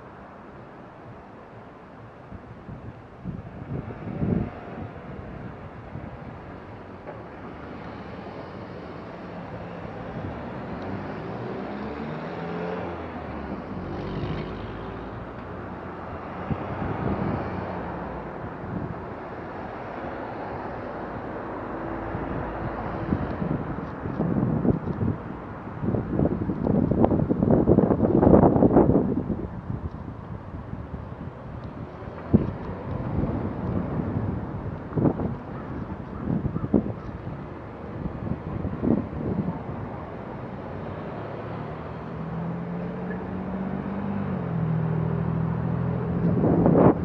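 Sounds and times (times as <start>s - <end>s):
car engines and tyres passing: 0.0s - 47.0s
wind rumbling on microphone: 0.0s - 47.0s.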